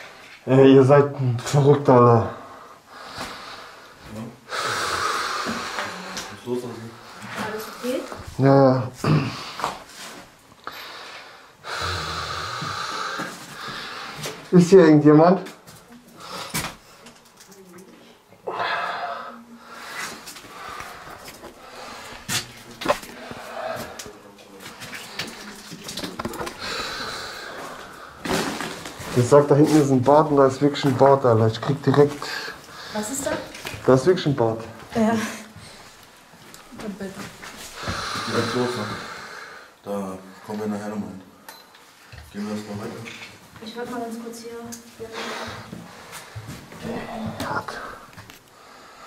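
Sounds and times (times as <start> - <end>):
person exhaling hard: 37.8 - 39.7.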